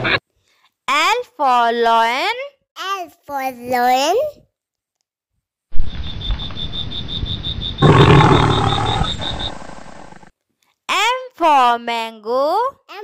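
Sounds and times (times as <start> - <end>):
lion roaring: 7.8 - 10.3.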